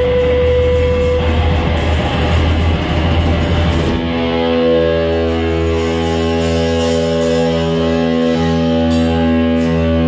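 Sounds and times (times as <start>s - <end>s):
bass guitar: 0.0s - 10.0s
drums: 0.0s - 10.0s
electric guitar: 0.0s - 10.0s.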